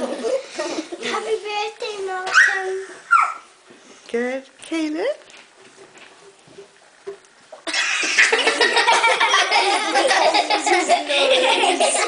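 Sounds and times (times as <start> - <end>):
child speaking: 1.0 - 3.4.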